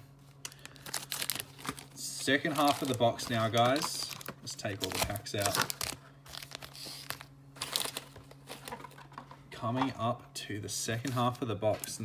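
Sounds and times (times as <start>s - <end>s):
foil wrappers crinkling: 0.4s - 9.1s, 11.0s - 12.0s.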